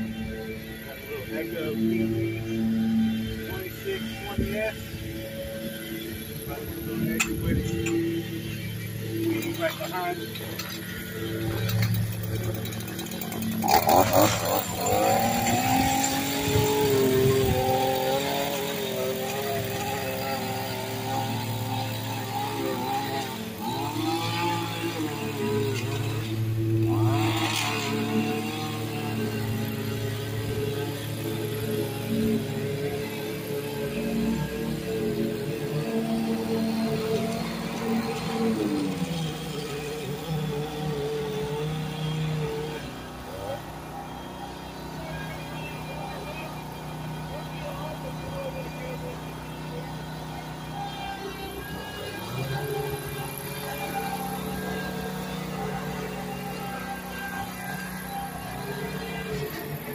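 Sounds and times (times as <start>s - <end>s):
power edger engine: 0.0s - 59.9s
riding mower engine: 0.0s - 59.9s.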